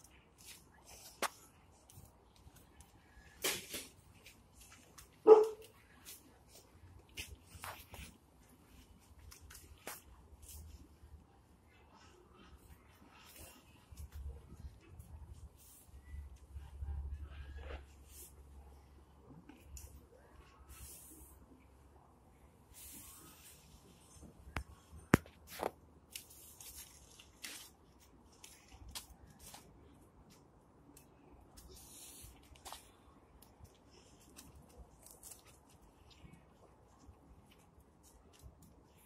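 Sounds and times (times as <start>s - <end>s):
paper rustling and crumpling: 25.5s - 29.7s.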